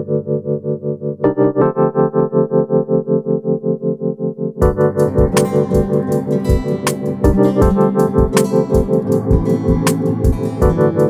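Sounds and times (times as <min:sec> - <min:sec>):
quick repeating melodic figure: 0:04.6 - 0:11.0.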